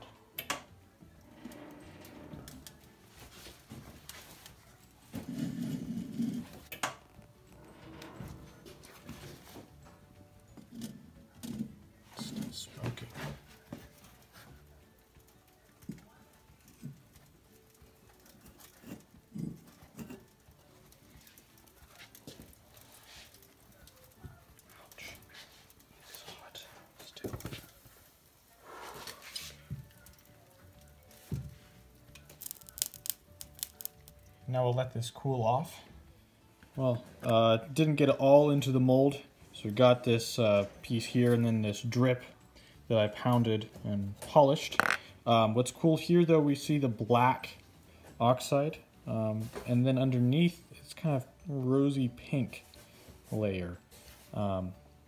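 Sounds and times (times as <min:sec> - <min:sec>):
molten metal pouring: 0:01.0 - 0:09.7, 0:32.0 - 0:34.4.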